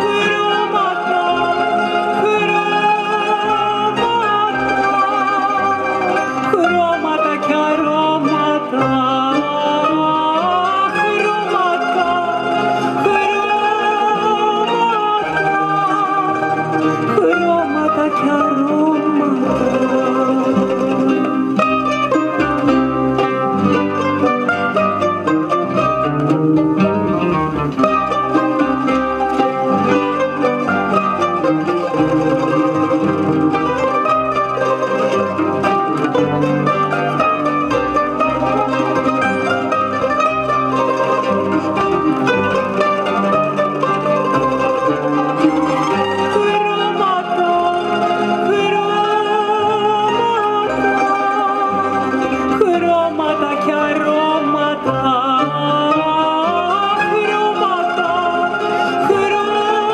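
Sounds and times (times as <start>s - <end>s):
woman singing with vibrato: 0.0s - 25.6s, 45.7s - 59.9s
plucked-string orchestra: 0.0s - 59.9s.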